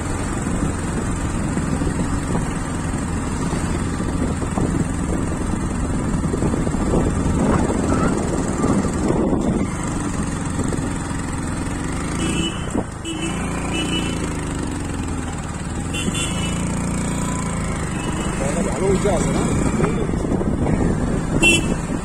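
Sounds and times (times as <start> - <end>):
wind rumble on microphone: 0.0 - 11.2, 18.5 - 22.0
motorcycle engine running: 0.0 - 22.0.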